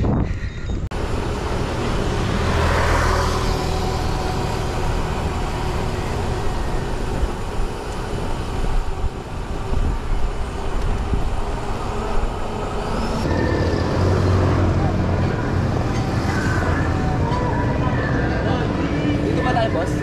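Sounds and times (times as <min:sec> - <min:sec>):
wind on microphone: 0:00.0 - 0:02.5, 0:03.4 - 0:17.7
bicycle road noise on asphalt: 0:00.0 - 0:20.0
motorcycle engine humming: 0:00.9 - 0:20.0.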